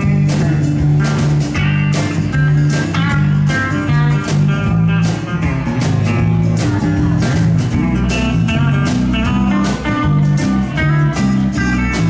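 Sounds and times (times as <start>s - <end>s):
acoustic guitar: 0.0s - 12.0s
bass guitar: 0.0s - 12.0s
drums keeping a steady beat: 0.0s - 12.0s
electric guitar: 0.0s - 12.0s.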